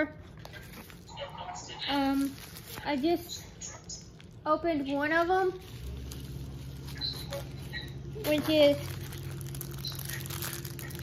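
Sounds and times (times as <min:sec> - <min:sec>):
steady low hum: 0:00.0 - 0:11.0
plastic packaging crinkling: 0:00.3 - 0:01.1, 0:01.9 - 0:11.0.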